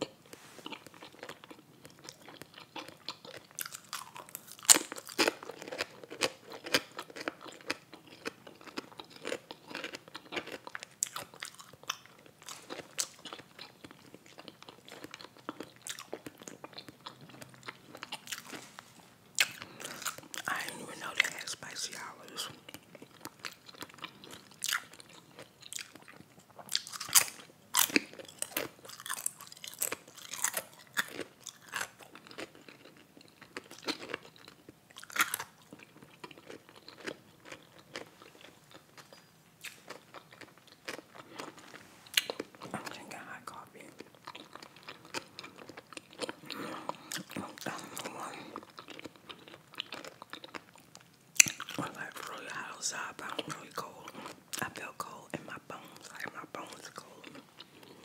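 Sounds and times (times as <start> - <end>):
chewing crunchy food: 0.0 - 58.0.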